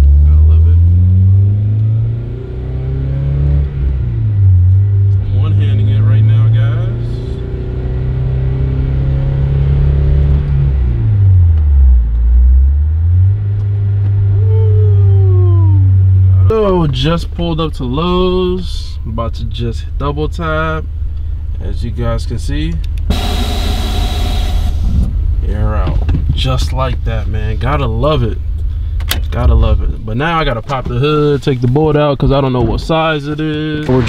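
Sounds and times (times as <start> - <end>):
car engine accelerating: 0.0 - 16.8, 22.9 - 25.6.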